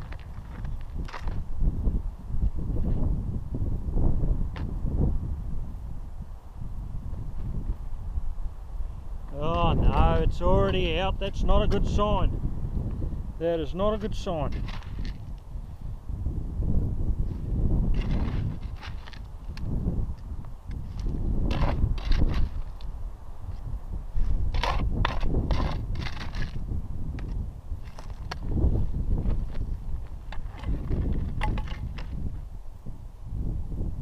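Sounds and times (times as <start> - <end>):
wind rumble on microphone: 0.0 - 34.0
stony soil scraped by hand: 13.8 - 15.4, 17.2 - 19.7, 20.7 - 22.9, 23.5 - 32.4.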